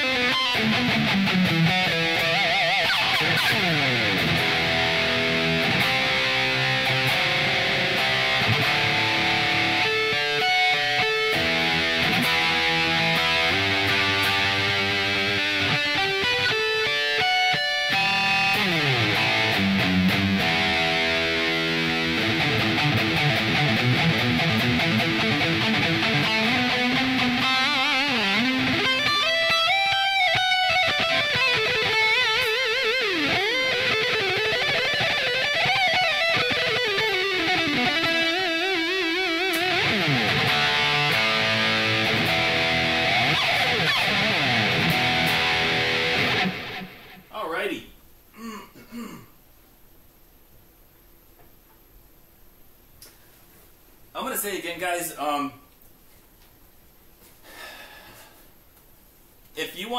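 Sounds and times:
electric guitar shred solo: 0.0s - 47.3s.

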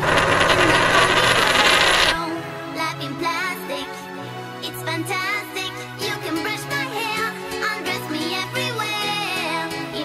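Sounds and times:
loud dense noisy sound effect: 0.0s - 2.2s.

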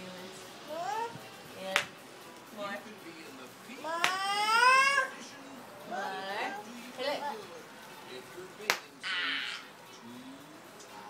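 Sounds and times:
toddler squealing: 3.9s - 5.2s.

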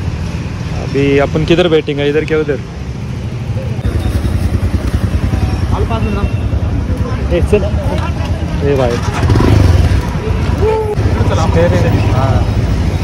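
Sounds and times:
motorcycle engine idling: 3.8s - 7.0s.

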